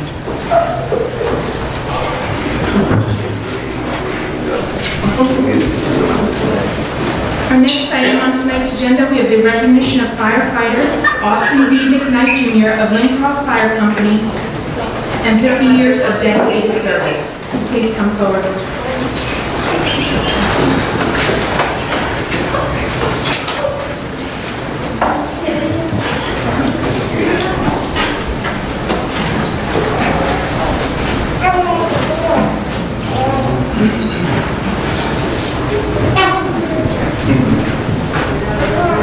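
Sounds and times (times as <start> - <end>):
murmur of people talking: 0.0 - 39.0.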